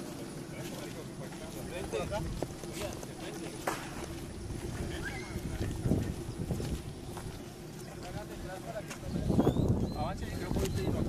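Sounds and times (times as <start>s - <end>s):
wind rumbling on microphone: 1.8s - 11.0s.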